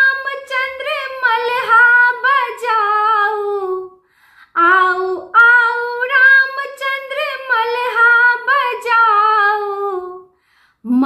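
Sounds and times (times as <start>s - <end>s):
woman singing unaccompanied: 0.0s - 4.0s, 4.6s - 10.3s.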